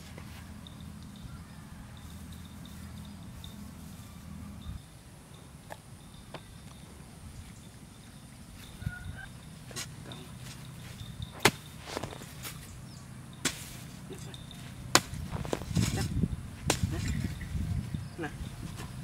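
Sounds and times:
soil rustling: 0:09.5 - 0:19.0
hoe chopping dry earth: 0:09.7 - 0:12.7, 0:13.4 - 0:17.4.

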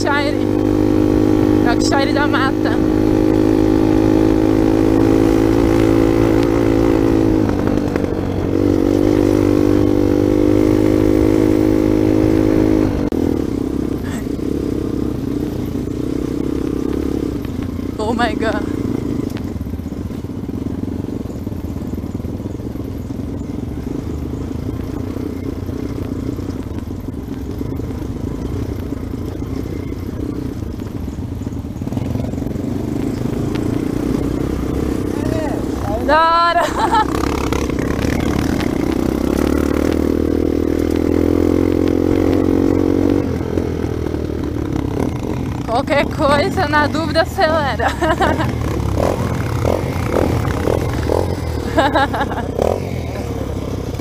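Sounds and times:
dirt bike engine running: 0:00.0 - 0:54.0
riding noise: 0:00.0 - 0:54.0.

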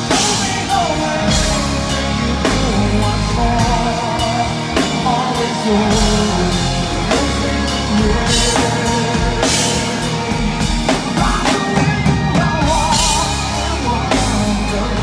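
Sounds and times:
bass guitar: 0:00.0 - 0:15.0
drum kit with cymbals: 0:00.0 - 0:15.0
electric guitars: 0:00.0 - 0:15.0
man singing: 0:00.0 - 0:15.0.

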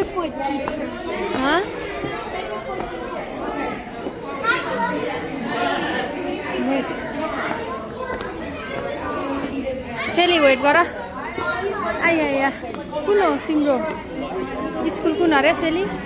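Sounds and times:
chatter of many voices: 0:00.0 - 0:16.0.

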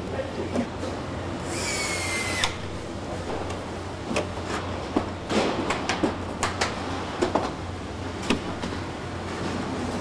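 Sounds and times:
low factory hum: 0:00.0 - 0:10.0.

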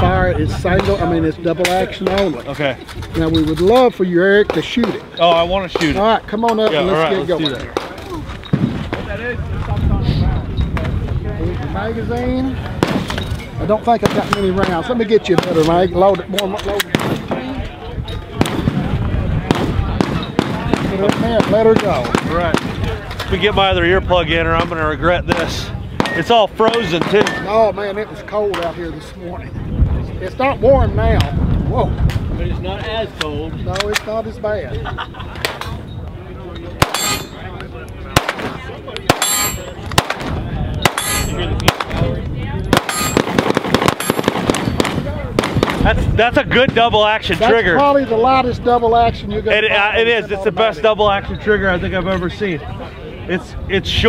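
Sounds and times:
voices in background: 0:00.0 - 0:54.0
gunshots: 0:05.7 - 0:09.1, 0:12.7 - 0:15.8, 0:16.7 - 0:17.4, 0:18.4 - 0:23.0, 0:24.6 - 0:27.5, 0:36.8 - 0:37.4, 0:38.1 - 0:46.0
pistol shots: 0:12.8 - 0:13.3, 0:14.0 - 0:15.7, 0:19.5 - 0:22.8, 0:25.3 - 0:27.5, 0:36.8 - 0:37.4, 0:38.1 - 0:42.1, 0:42.7 - 0:45.8.

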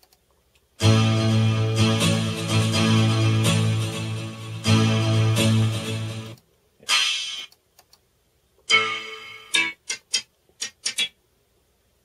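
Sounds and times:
acoustic guitar strumming chords: 0:00.8 - 0:06.4, 0:08.7 - 0:09.9.

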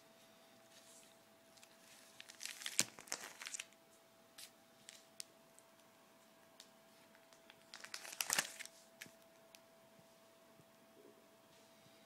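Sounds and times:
plastic binder pages crinkling: 0:00.8 - 0:03.8, 0:04.4 - 0:05.9, 0:07.0 - 0:09.4.

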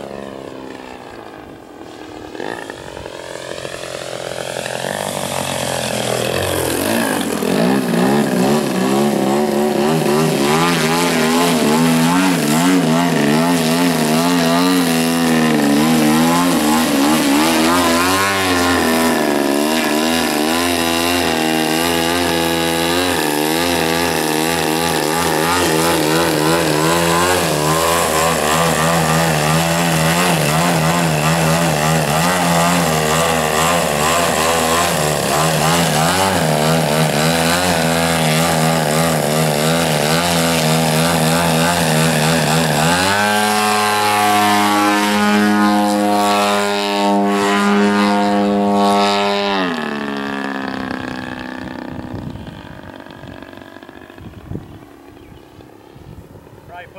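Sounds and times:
model plane engine revving: 0:00.0 - 0:56.9.

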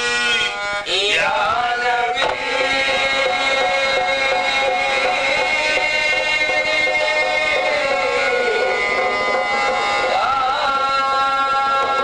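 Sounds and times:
harmonium chord: 0:00.0 - 0:12.0.

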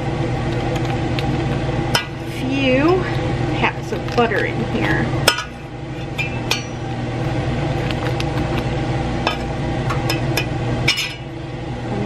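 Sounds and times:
steady low hum: 0:00.0 - 0:12.0
knife clinking on metal pot: 0:06.2 - 0:06.8.

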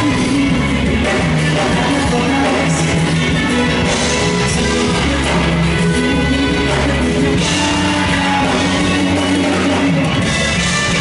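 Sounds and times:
drums: 0:00.0 - 0:11.0
electric guitar: 0:00.0 - 0:11.0
trumpet: 0:00.0 - 0:11.0.

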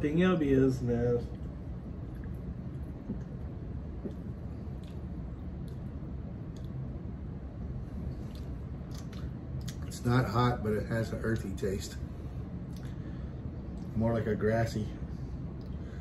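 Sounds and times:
low room hum: 0:00.0 - 0:16.0
people sipping and swallowing: 0:01.3 - 0:06.8, 0:08.0 - 0:10.0, 0:12.7 - 0:13.0.

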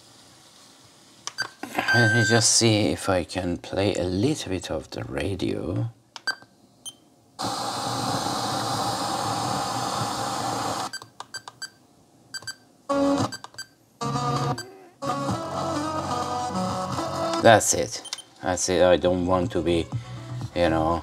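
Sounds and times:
radio static hiss: 0:07.4 - 0:10.9
music from radio speaker: 0:14.0 - 0:17.4, 0:19.4 - 0:20.7.

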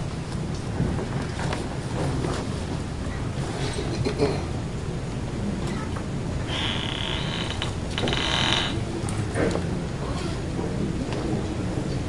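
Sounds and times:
mechanical creak with ratcheting clicks: 0:06.5 - 0:08.8.

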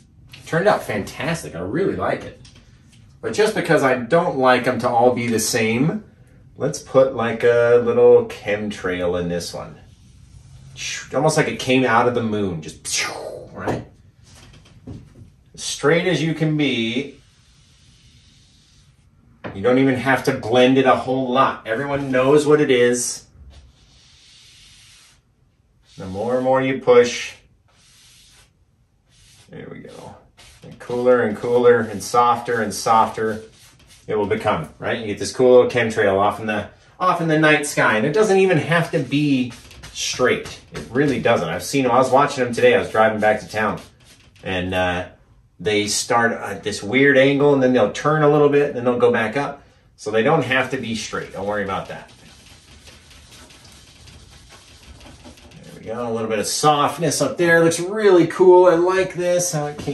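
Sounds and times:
brush stroking wet paint: 0:09.0 - 0:11.5, 0:15.6 - 0:19.2, 0:20.0 - 0:22.8, 0:23.5 - 0:34.8, 0:37.8 - 0:44.6, 0:50.4 - 0:57.8.

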